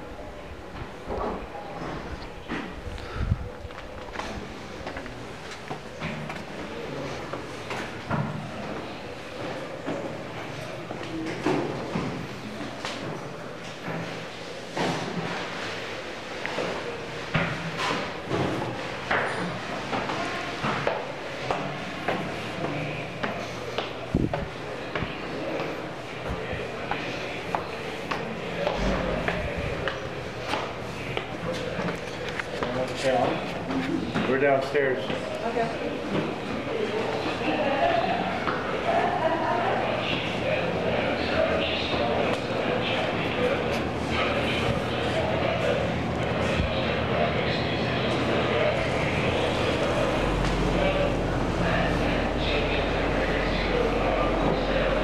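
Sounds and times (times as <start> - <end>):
indistinct voices: 0.0 - 55.0
footsteps: 0.7 - 15.9, 16.5 - 35.4.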